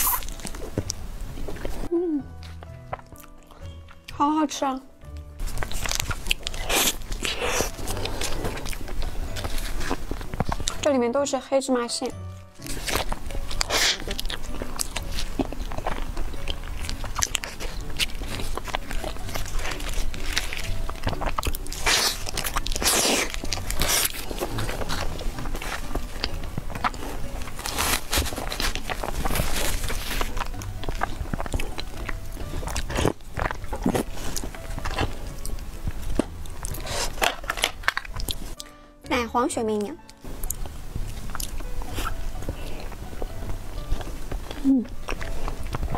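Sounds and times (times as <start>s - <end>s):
biting and chewing: 0.0s - 4.2s, 5.1s - 11.0s, 12.3s - 38.8s, 39.7s - 45.9s
background music: 0.0s - 45.9s.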